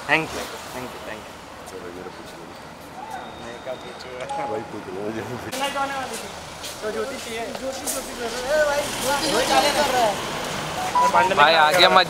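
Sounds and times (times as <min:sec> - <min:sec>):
people talking indistinctly: 0:00.0 - 0:12.0
street noise: 0:00.0 - 0:12.0.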